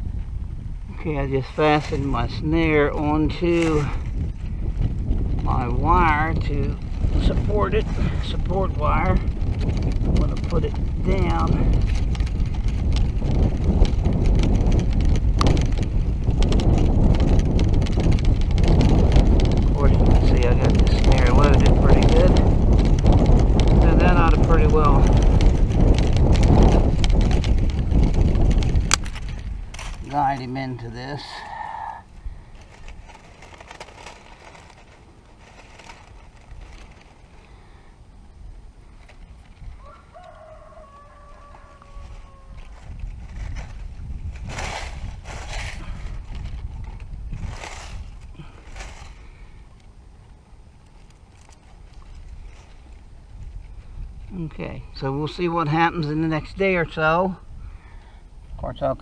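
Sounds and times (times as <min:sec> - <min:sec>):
wind buffeting microphone: 0:00.0 - 0:59.0
poultry calls: 0:39.8 - 0:42.6.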